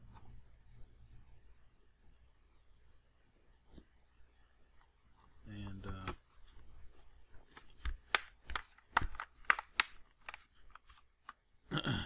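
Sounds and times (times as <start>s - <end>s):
plastic clips snapping into place: 7.8s - 10.4s.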